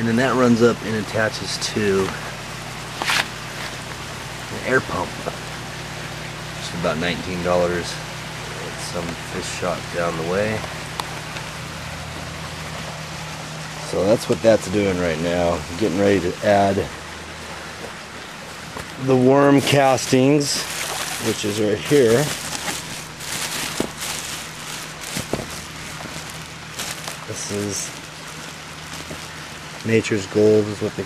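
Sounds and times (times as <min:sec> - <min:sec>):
air pump humming: 0:00.0 - 0:31.0
plastic bag rustling: 0:17.6 - 0:31.0.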